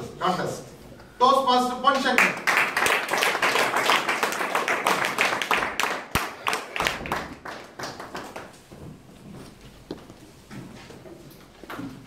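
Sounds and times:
audience applauding: 0:02.2 - 0:08.6.

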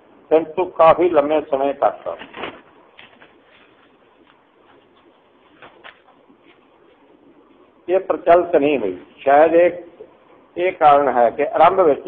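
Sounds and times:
man lecturing: 0:00.3 - 0:02.2, 0:07.9 - 0:12.0.

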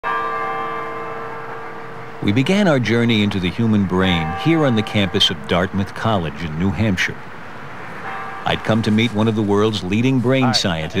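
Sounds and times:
bell-like chime ringing: 0:04.0 - 0:05.4.

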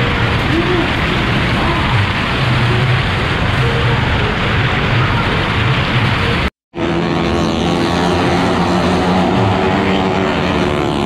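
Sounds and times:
motorcycle engine high revs: 0:06.7 - 0:11.0.

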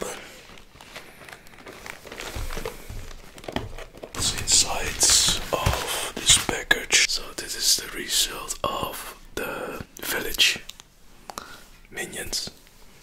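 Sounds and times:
person whispering: 0:00.0 - 0:00.5, 0:04.2 - 0:10.8, 0:11.4 - 0:12.7.

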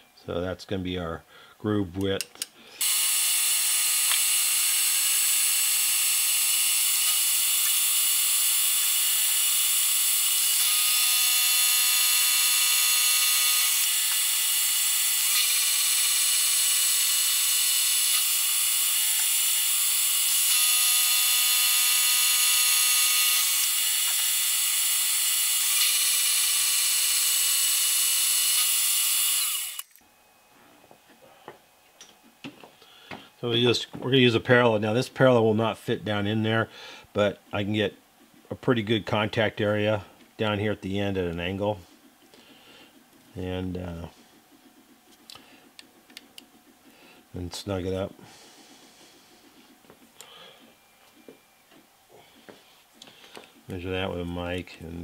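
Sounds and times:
milling machine cutting metal: 0:02.8 - 0:29.9.

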